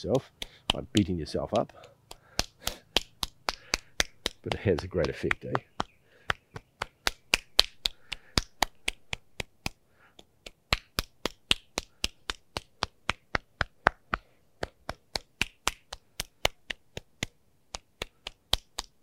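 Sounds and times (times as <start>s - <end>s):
hand slapping forearm: 0.0s - 19.0s.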